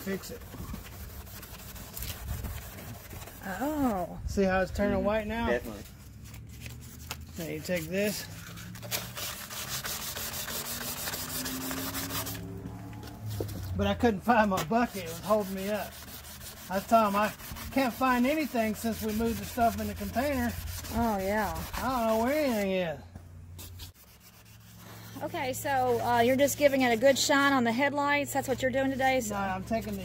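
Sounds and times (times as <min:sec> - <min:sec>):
hand-sanding plastic: 0:00.0 - 0:04.0, 0:05.6 - 0:12.5, 0:13.3 - 0:22.8, 0:23.6 - 0:30.0.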